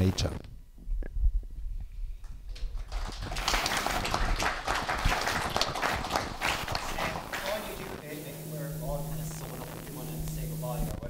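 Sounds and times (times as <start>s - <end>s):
audience applauding: 2.5s - 8.1s.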